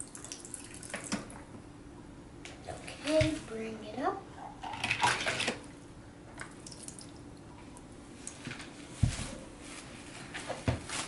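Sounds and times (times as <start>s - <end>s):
water splashing and dripping: 6.4s - 7.2s.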